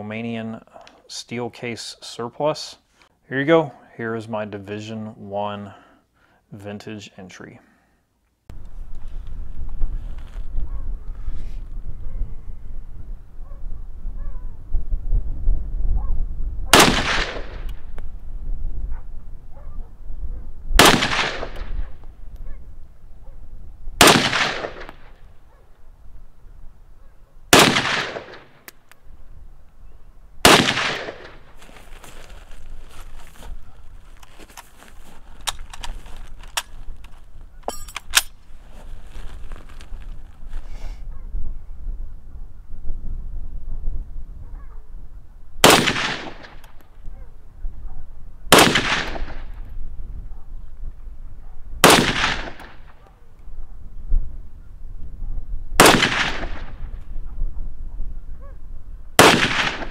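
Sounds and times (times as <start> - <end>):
rifle shots with echo: 16.7 - 17.9, 20.8 - 22.0, 24.0 - 25.2, 27.5 - 28.6, 30.4 - 31.6, 45.6 - 46.6, 48.5 - 49.6, 51.8 - 53.0, 55.8 - 56.9, 59.2 - 59.9.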